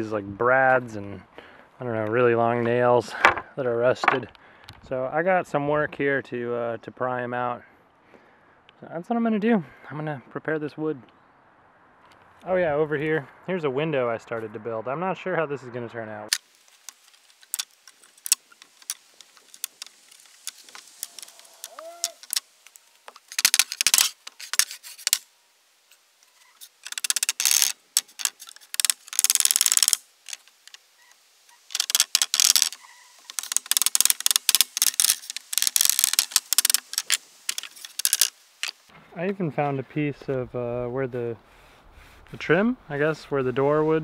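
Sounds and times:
scraping and rasping: 16.3 - 25.3, 31.5 - 38.9.

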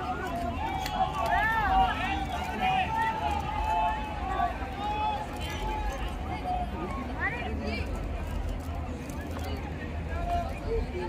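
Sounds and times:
crowd talking and calling: 0.0 - 11.0.

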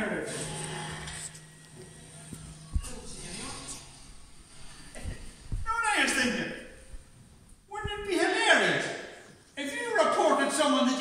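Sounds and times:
footsteps on wooden stage: 4.1 - 8.3.

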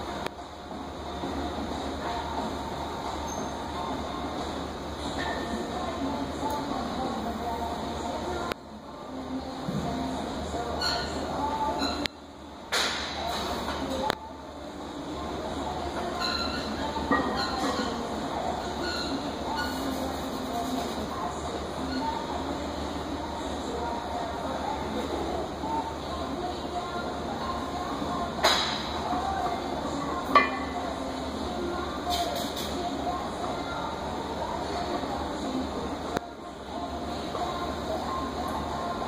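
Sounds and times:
faint voices: 13.1 - 39.0.

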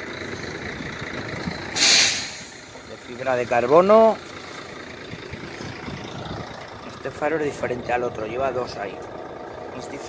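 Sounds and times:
truck engine idling: 0.0 - 10.0
man speaking: 2.8 - 4.2.

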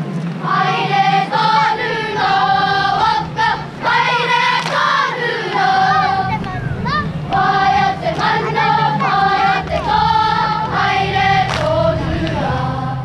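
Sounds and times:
low hum: 0.0 - 13.0
children singing in unison: 0.4 - 13.0.

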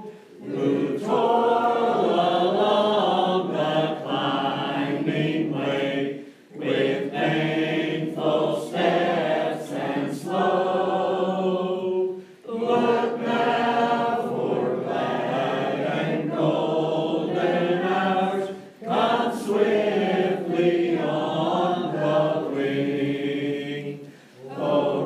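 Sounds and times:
mixed choir singing a hymn: 0.0 - 25.0.

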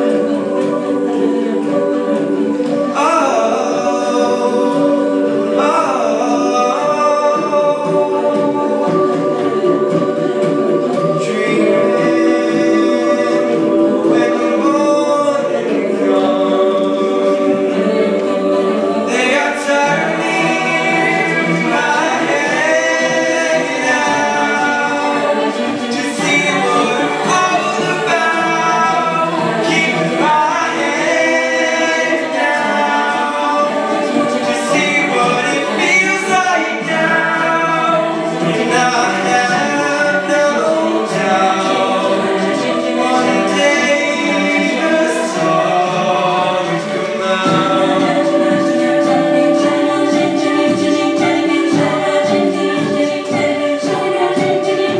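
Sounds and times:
backing choir holding chords: 0.0 - 54.9
male lead vocalist singing: 2.6 - 54.7.

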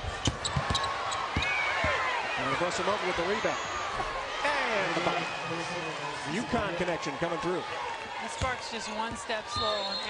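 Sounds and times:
voices in arena: 0.0 - 10.0
sneaker squeaks: 0.2 - 1.5.

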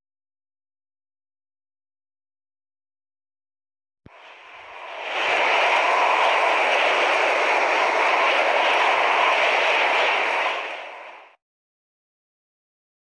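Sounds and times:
rushing wind: 4.1 - 11.4.

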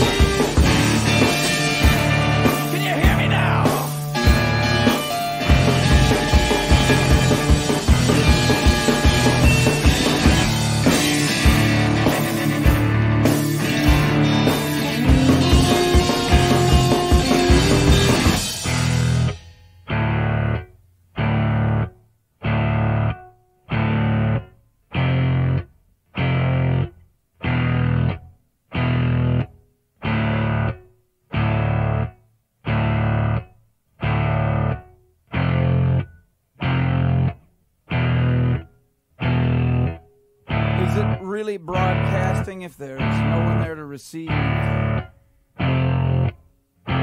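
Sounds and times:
full rock band: 0.0 - 19.4
distorted electric guitar chord: 0.0 - 20.6, 39.2 - 47.0.

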